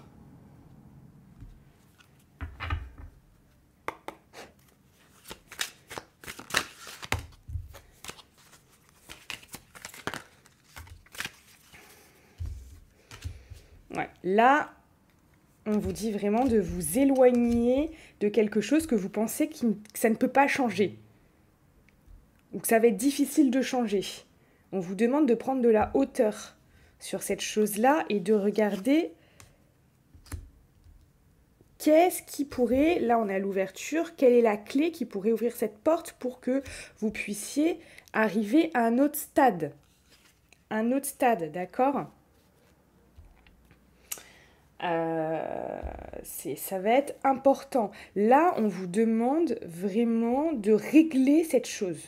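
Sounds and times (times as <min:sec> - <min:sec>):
deck of cards shuffling: 0:01.4 - 0:02.3, 0:04.1 - 0:13.8, 0:15.6 - 0:18.0, 0:27.6 - 0:29.0, 0:30.1 - 0:31.0, 0:39.8 - 0:40.7.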